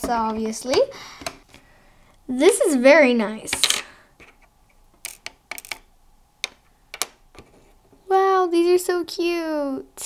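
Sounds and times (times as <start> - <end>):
plastic toy pieces clicking: 5.0 - 7.2.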